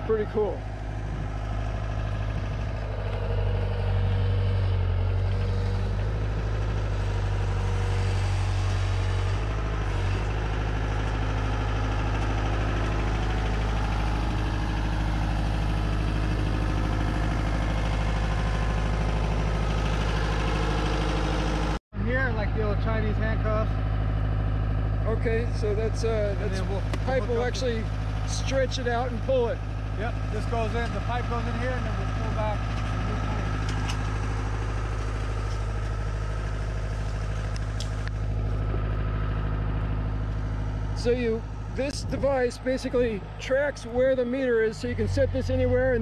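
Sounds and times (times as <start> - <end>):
diesel engine idling: 0.0 - 46.0.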